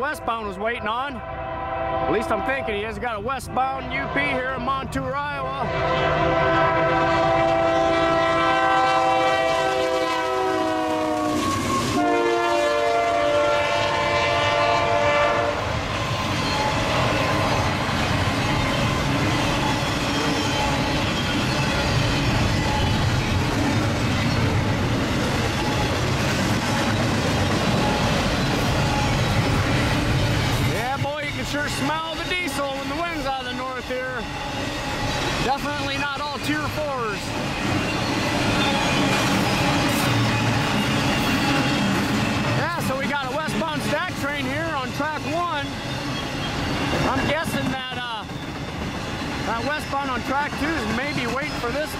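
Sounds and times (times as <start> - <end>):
freight train rumbling past: 0.0 - 51.9
locomotive horn blasts: 1.2 - 2.8, 5.6 - 15.7.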